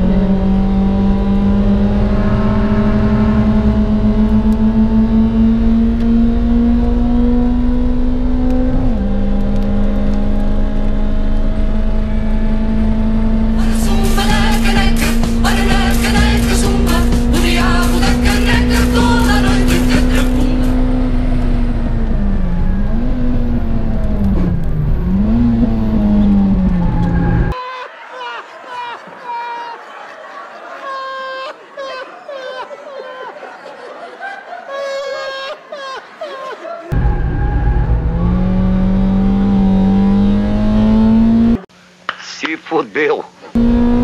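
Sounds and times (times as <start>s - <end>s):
car engine at high revs: 0.0s - 27.6s, 36.9s - 42.6s, 43.4s - 44.0s
music: 13.6s - 20.9s.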